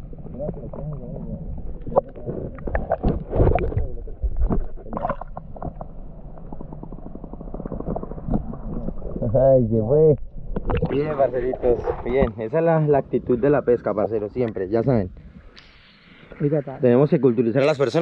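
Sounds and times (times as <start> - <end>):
underwater gurgling and sloshing: 0.0 - 18.0
underwater knocks and clicks: 1.6 - 9.3, 10.2 - 12.4.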